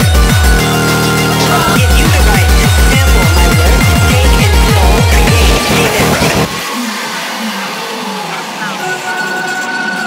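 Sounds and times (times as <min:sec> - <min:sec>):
rising synth sweep: 0:00.0 - 0:09.4
hardcore electronic music synths: 0:00.0 - 0:10.0.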